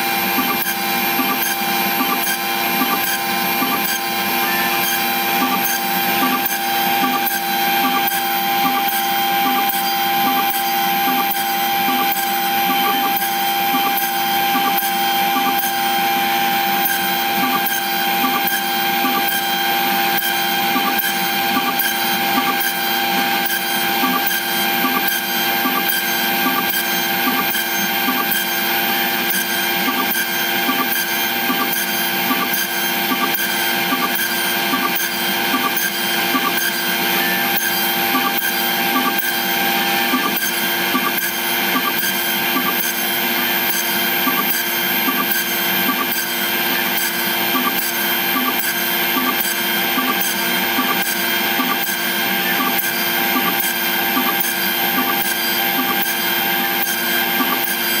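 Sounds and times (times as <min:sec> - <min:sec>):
high spindle whine: 0:00.0 - 0:58.0.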